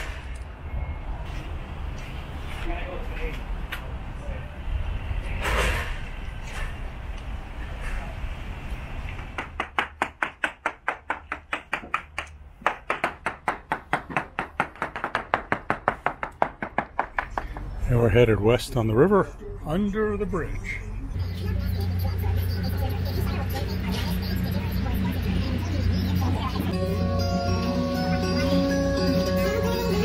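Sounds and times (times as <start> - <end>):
hammer tapping on fibreglass hull: 9.3 - 17.7.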